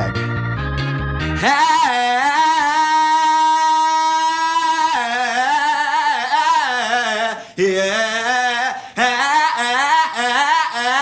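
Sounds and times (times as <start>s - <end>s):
man singing unaccompanied: 1.4s - 11.0s.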